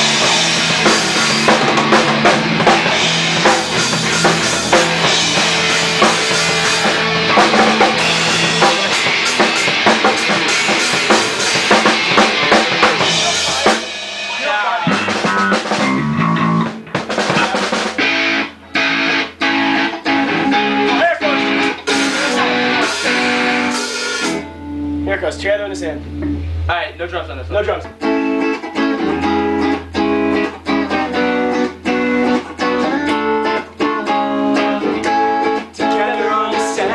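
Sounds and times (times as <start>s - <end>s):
loose guitar and bass notes: 0.0s - 36.9s
rock band playing loudly: 0.0s - 36.9s
steady bass line: 0.0s - 36.9s
people talking: 8.5s - 9.1s, 13.0s - 15.4s, 17.2s - 17.9s, 20.8s - 23.4s, 25.0s - 26.1s, 26.7s - 27.9s.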